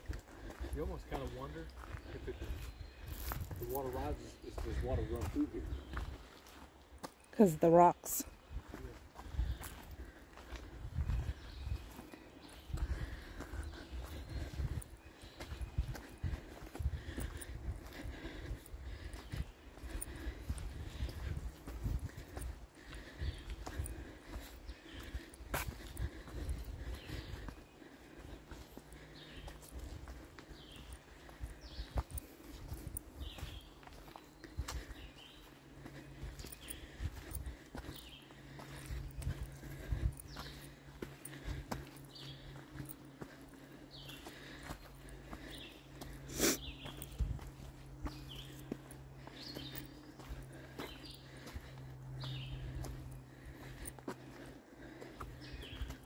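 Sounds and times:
footsteps on dirt and rock trail: 0.0s - 56.0s.

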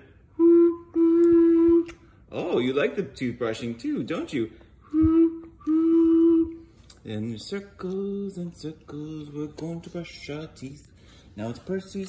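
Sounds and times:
whistle blowing: 0.3s - 2.1s, 4.8s - 6.7s.

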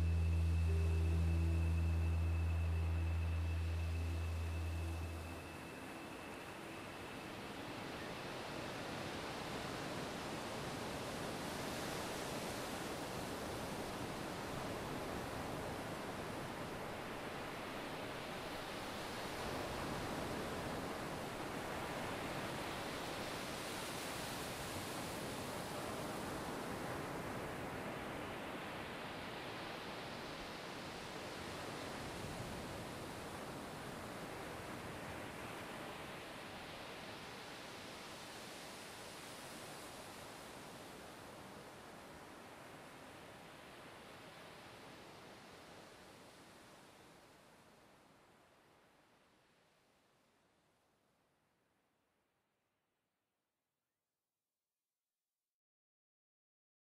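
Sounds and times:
steady wash of noise: 0.0s - 22.0s.

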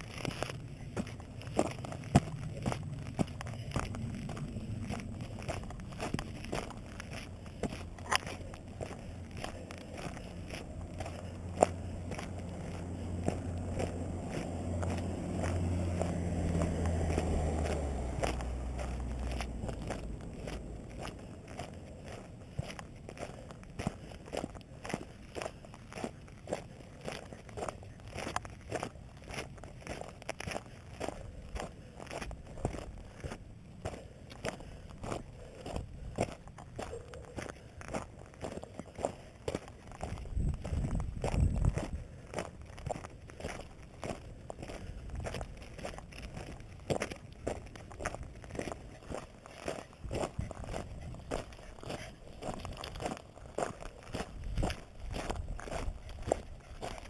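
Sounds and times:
low rumble: 0.0s - 26.5s, 34.4s - 57.0s
footsteps crunching on gravel: 0.0s - 57.0s.

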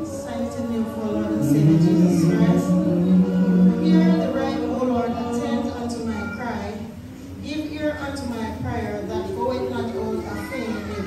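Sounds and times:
overlapping voices: 0.0s - 7.0s
woman speaking over a microphone: 5.9s - 11.0s.

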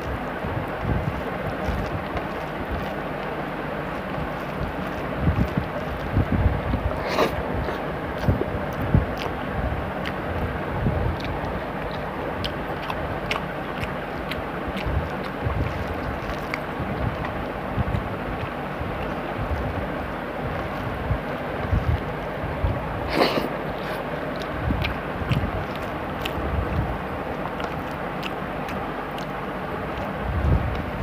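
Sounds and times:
wind on microphone: 0.0s - 3.0s, 4.1s - 13.4s, 14.7s - 27.9s, 29.8s - 31.0s
fingers mixing food on steel plate: 0.0s - 30.2s
chewing: 0.0s - 31.0s.

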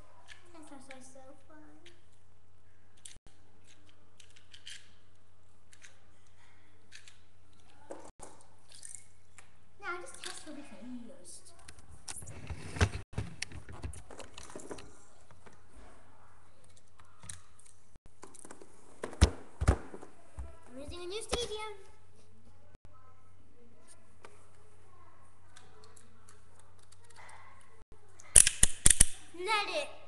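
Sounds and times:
plastic toy parts clicking: 3.0s - 7.7s, 28.2s - 29.2s.

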